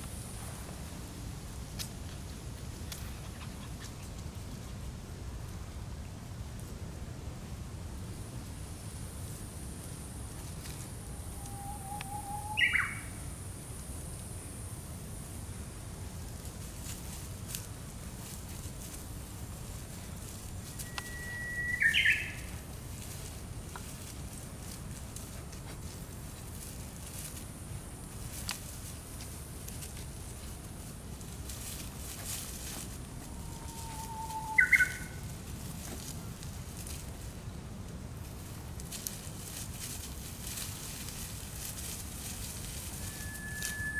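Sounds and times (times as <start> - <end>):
faint thin whistle: 11.3 - 13.0, 20.6 - 22.5, 33.4 - 35.2, 42.9 - 43.9
puppy whining: 33.2 - 34.8.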